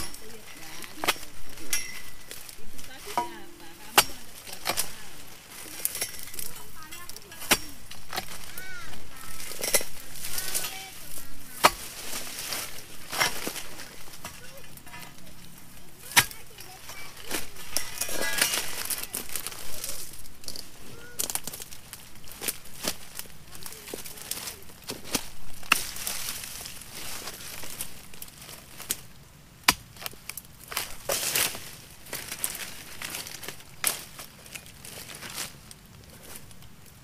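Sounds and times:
rustling of dry fronds: 0:00.0 - 0:37.0.

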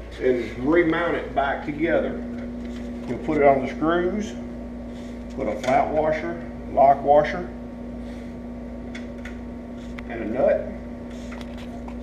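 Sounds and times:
shop hum: 0:00.0 - 0:12.0.

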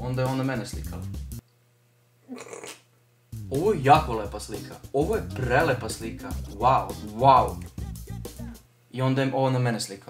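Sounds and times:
background music: 0:00.0 - 0:01.4, 0:03.3 - 0:08.7
short vocal sound: 0:07.5 - 0:08.6.

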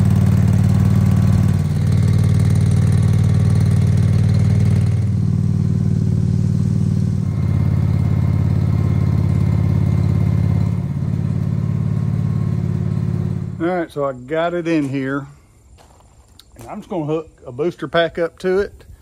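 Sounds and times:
garden tractor engine running: 0:00.0 - 0:15.3.

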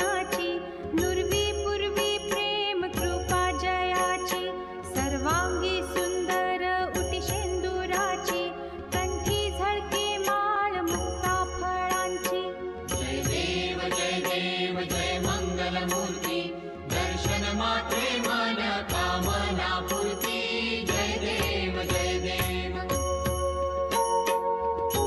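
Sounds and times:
ringing metal percussion: 0:00.0 - 0:25.0
devotional hymn singing: 0:12.9 - 0:23.0.

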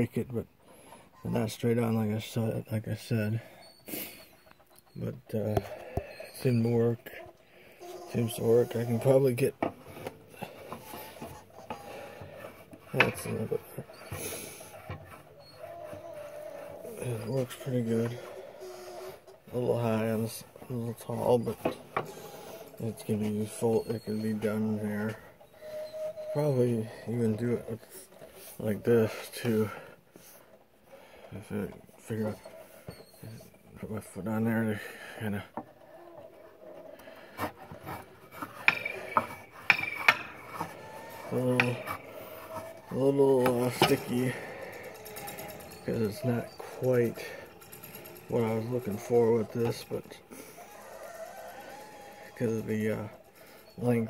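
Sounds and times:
metal rubbing and scraping: 0:03.0 - 0:29.9, 0:31.4 - 0:54.0
grip exerciser rubbing and clicking: 0:35.6 - 0:54.0.

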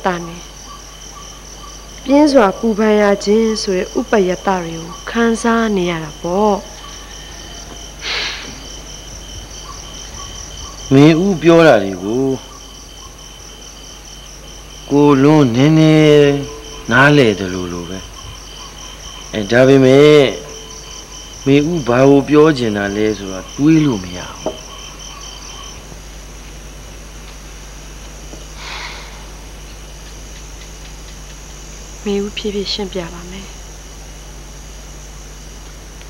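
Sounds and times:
crickets chirping: 0:00.0 - 0:36.0
short hiss: 0:08.0 - 0:08.6.

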